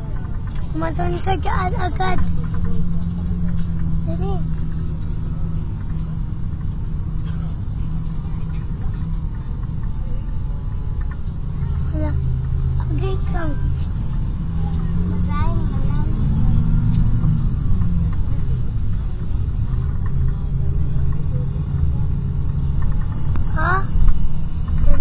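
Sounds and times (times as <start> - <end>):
vehicle engine and tyre rumble: 0.0 - 25.0
voices: 0.0 - 25.0.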